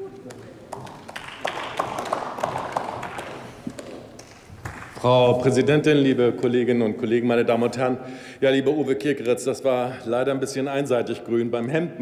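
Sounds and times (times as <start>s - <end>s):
applause in large hall: 0.0s - 5.2s.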